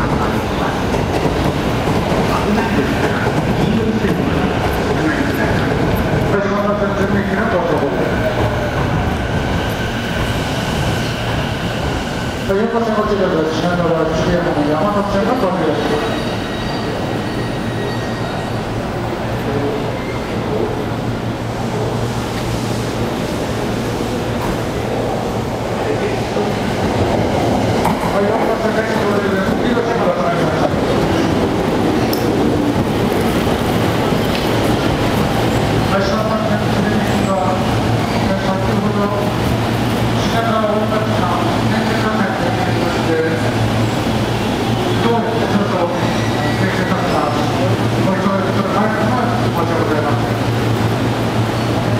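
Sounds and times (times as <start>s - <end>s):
electric train hum and rumble: 0.0s - 51.9s.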